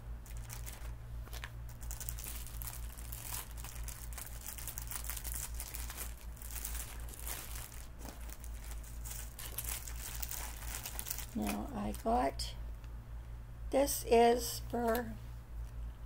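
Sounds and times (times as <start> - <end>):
plastic packaging crinkling: 0.2 - 12.2.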